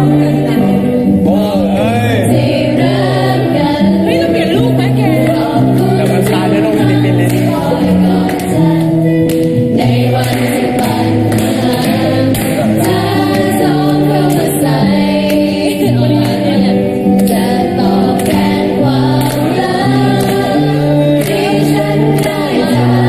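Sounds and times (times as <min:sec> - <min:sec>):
electric guitar: 0:00.0 - 0:23.0
young voices singing together: 0:00.0 - 0:23.0.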